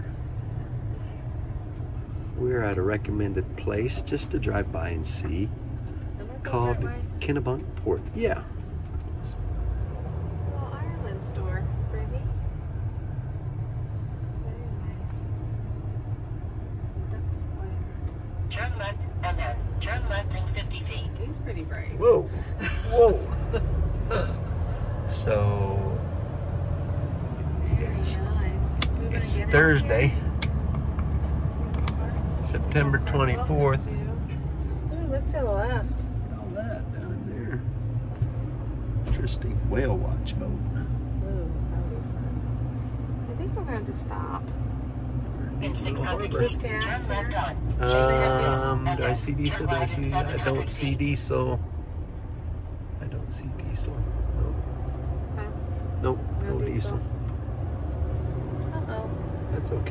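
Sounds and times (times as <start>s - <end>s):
engine and road rumble in cabin: 0.0s - 59.9s.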